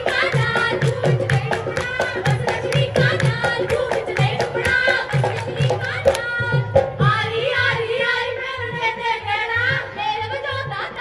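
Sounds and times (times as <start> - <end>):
hand drum beat: 0.0 - 7.1
folk singing: 0.0 - 11.0.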